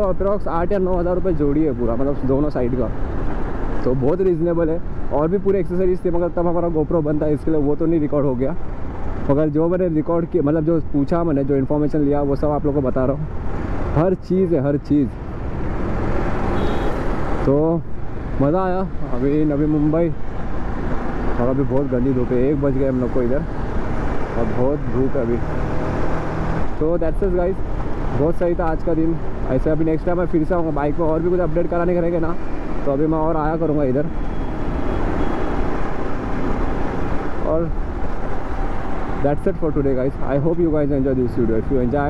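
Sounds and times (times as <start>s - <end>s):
road noise: 0.0s - 42.0s
man speaking: 17.5s - 20.2s, 21.4s - 23.5s, 24.4s - 25.5s, 26.8s - 27.6s, 28.2s - 34.1s, 39.2s - 42.0s.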